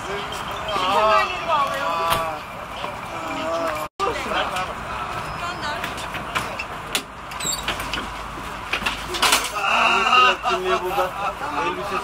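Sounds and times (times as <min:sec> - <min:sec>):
voices: 0:00.0 - 0:07.6, 0:08.5 - 0:12.0.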